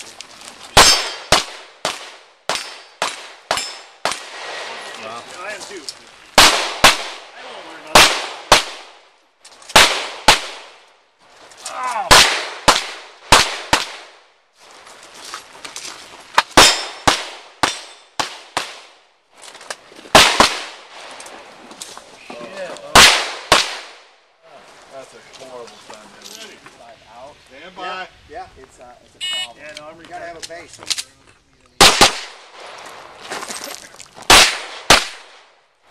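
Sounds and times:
pistol shots with echo: 0:00.8 - 0:04.3, 0:06.4 - 0:07.3, 0:07.9 - 0:09.0, 0:09.8 - 0:10.8, 0:12.1 - 0:14.2, 0:16.5 - 0:18.9, 0:20.1 - 0:20.8, 0:22.9 - 0:24.0, 0:31.8 - 0:32.4, 0:34.3 - 0:35.4.

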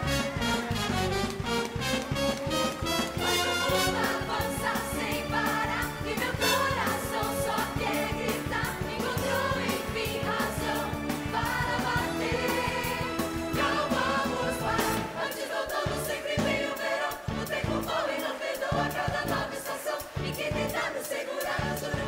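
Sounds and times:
upbeat band accompaniment: 0:00.0 - 0:22.0.

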